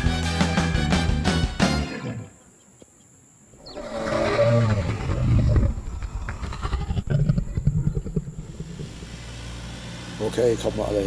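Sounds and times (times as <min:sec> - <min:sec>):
dinosaur roars: 0:03.7 - 0:09.0.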